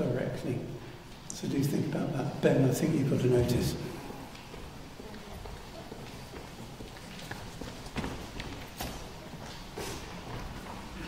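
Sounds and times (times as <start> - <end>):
footsteps walking away: 4.3 - 11.0.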